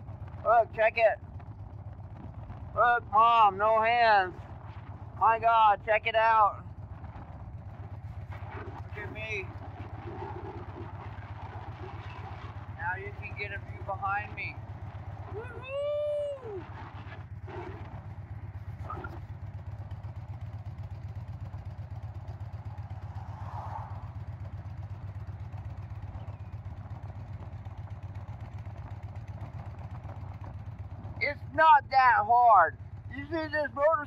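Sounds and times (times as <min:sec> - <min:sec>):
motorcycle engine droning: 0:00.0 - 0:34.0
person whooping: 0:15.3 - 0:16.7.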